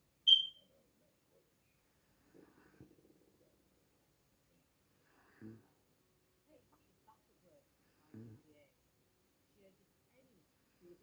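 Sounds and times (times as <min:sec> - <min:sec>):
high-pitched beep: 0:00.3 - 0:00.6.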